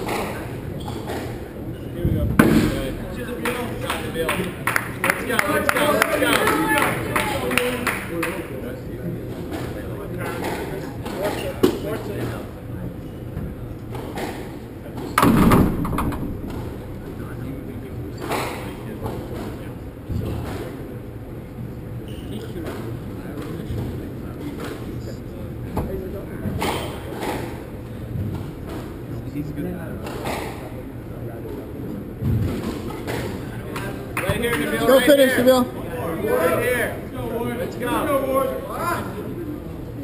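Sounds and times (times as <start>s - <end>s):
heavy thud: 2.0s - 3.1s, 15.2s - 17.8s
squash ball knocks: 14.0s - 17.4s.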